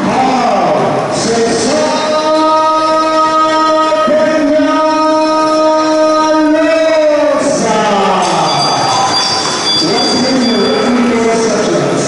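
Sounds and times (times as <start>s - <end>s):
announcer calling over pa: 0.0s - 12.0s
thin steady high tone: 8.2s - 11.2s.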